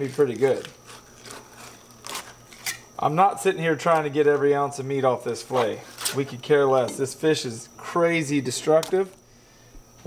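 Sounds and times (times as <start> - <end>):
knife slicing fish fillet: 0.8 - 2.4.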